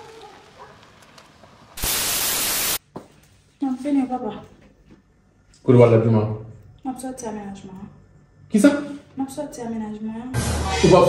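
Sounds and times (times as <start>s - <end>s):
burst of static white noise: 1.8s - 2.8s.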